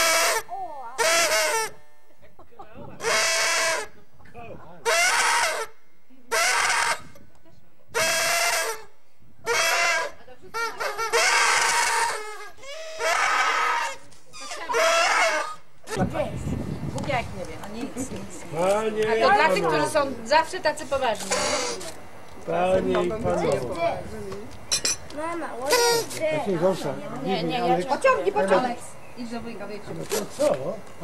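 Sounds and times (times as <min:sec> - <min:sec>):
short high-pitched vocal cries: 0:00.0 - 0:01.8, 0:08.0 - 0:15.7, 0:25.6 - 0:26.2.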